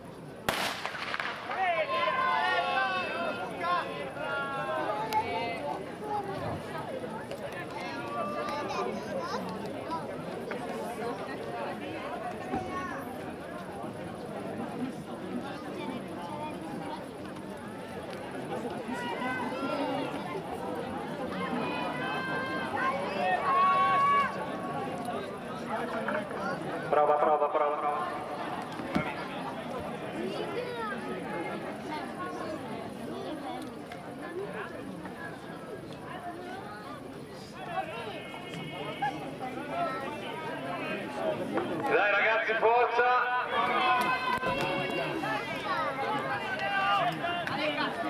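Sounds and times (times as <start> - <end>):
loud drawn-out shout: 1.5 - 4.6
voices shouting encouragement: 1.5 - 5.6, 21.3 - 24.5, 41.9 - 48.0.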